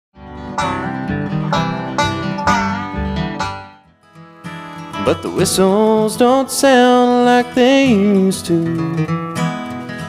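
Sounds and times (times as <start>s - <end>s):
plucked acoustic string band: 0.2s - 10.0s.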